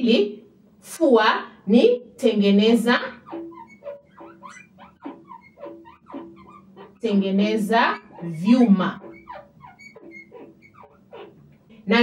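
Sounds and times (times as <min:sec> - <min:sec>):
chalk squeaking on a blackboard: 0:03.0 - 0:11.5.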